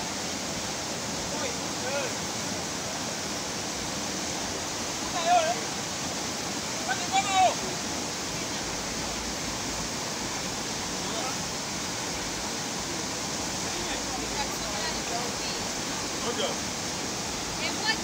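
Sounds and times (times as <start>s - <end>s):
river rapids rushing over rocks: 0.0s - 18.0s
person shouting: 6.9s - 7.6s.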